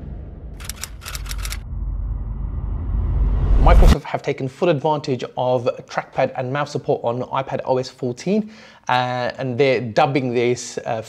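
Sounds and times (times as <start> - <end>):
deep bass rumble: 0.0 - 4.0
run of sharp clicks: 0.6 - 1.6.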